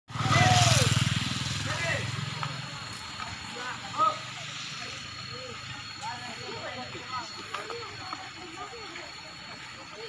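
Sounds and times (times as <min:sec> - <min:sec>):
motorcycle passing by: 0:00.1 - 0:06.6
voices: 0:00.1 - 0:10.0.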